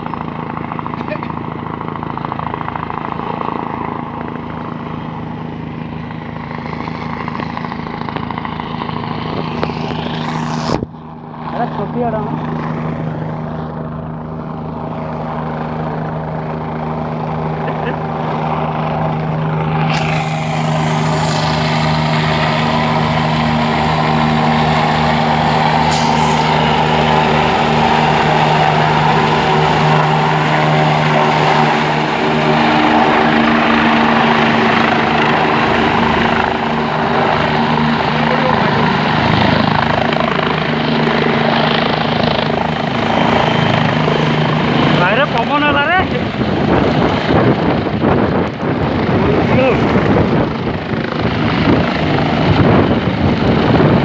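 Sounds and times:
helicopter rotor and turbine drone: 0.0 - 54.0
loud rushing hiss: 19.8 - 23.4, 25.7 - 27.2.

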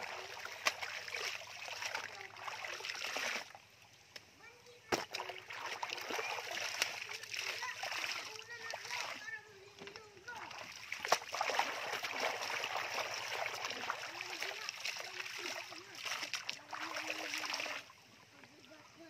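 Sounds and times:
sharp splashes: 0.0 - 3.6, 4.8 - 9.4, 10.2 - 18.0
wet cloth splashing: 0.0 - 3.7, 4.8 - 18.0
water dripping: 0.0 - 18.8
stream flowing: 0.0 - 19.0.

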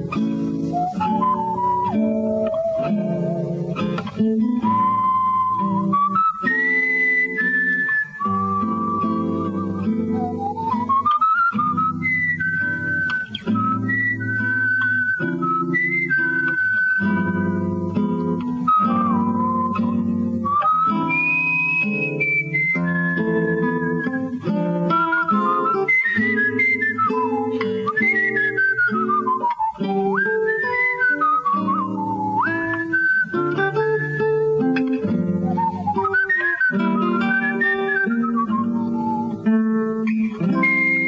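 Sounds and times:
electric jazz guitar chords: 0.0 - 41.0
man whistling jazz melody: 0.0 - 41.0.

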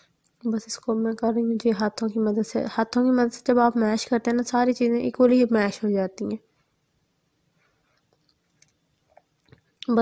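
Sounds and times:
woman speaking: 0.4 - 6.5.

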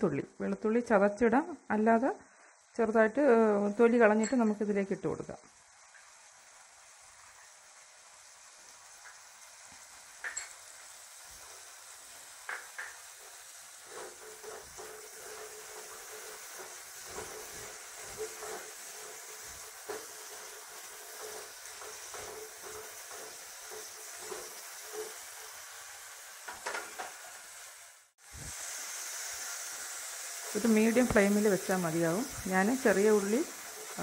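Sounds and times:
shallots and garlic sizzling in oil: 0.0 - 34.0
spatula scraping and knocking pot: 12.4 - 25.6.

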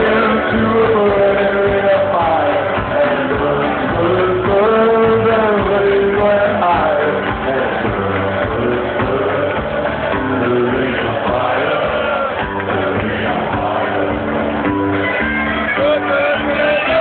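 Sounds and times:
crowd noise: 0.0 - 17.0
muffled live band with singing: 0.0 - 17.0.

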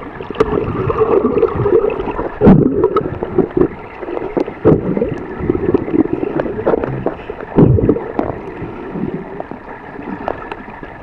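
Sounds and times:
water churning underwater: 0.0 - 11.0
knocks underwater: 0.3 - 8.5.

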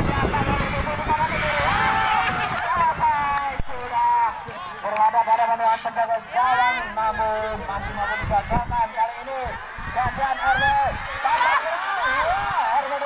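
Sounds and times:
people shouting: 0.0 - 2.8, 9.4 - 13.0.

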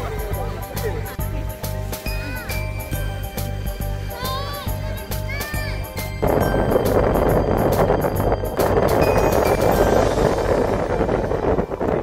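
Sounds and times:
wind and road noise: 0.0 - 12.0.

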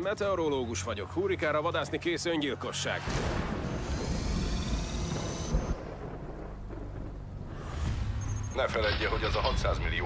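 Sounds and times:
rushing noise: 3.0 - 8.7
rolling thunder: 3.1 - 8.3.

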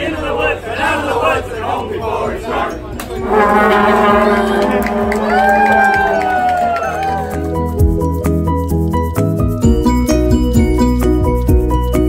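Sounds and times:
brass horns holding chord: 3.1 - 7.5.

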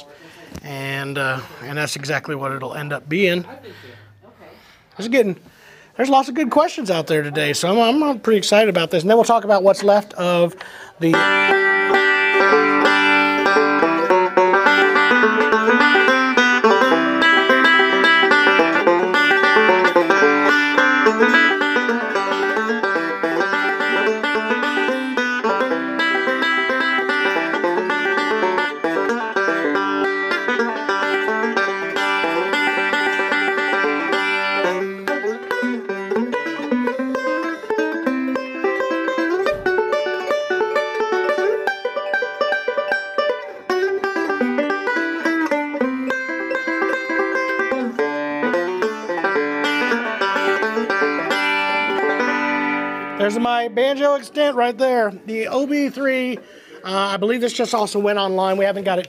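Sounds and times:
fingerpicked banjo: 6.1 - 59.0.

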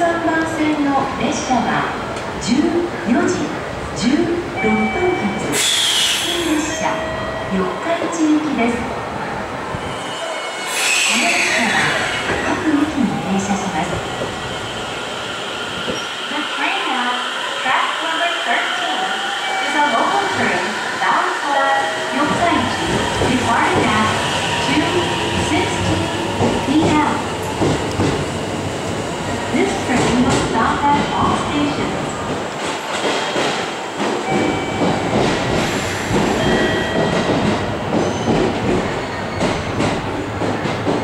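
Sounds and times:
platform announcements: 0.0 - 5.6, 6.4 - 9.1, 11.1 - 14.6, 16.2 - 27.4.

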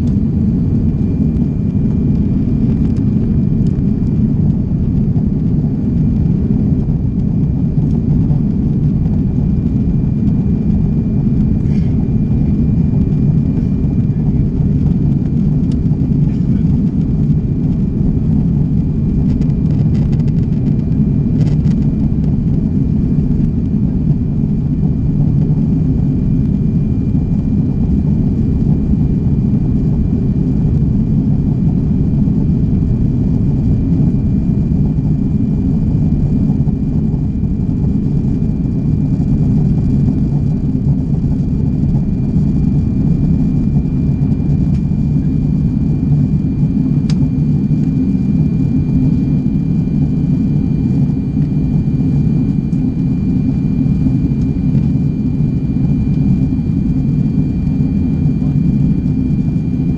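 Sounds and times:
airplane cabin rumble: 0.0 - 59.9
faint high whine: 5.7 - 59.9.

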